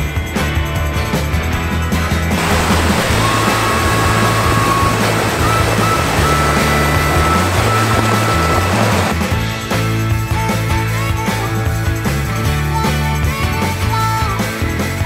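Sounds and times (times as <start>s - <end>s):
rock music: 0.0s - 15.0s
tyres splashing through water: 2.4s - 9.2s.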